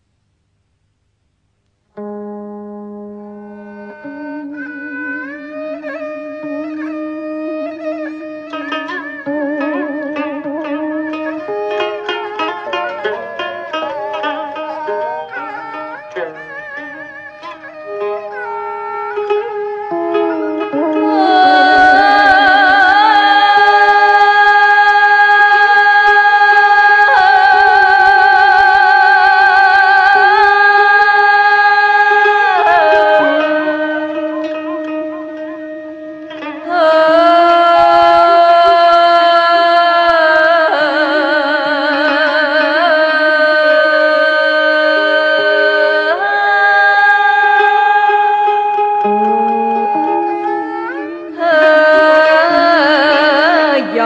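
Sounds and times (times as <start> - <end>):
soft string accompaniment: 1.9 - 54.0
bowed fiddle holding a long note: 2.0 - 54.0
woman singing folk style: 19.9 - 34.6, 36.6 - 54.0.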